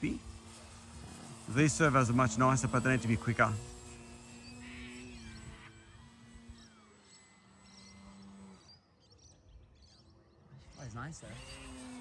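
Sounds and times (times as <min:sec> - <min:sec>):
birds chirping: 0:00.0 - 0:12.0
model plane propeller drone: 0:00.0 - 0:12.0.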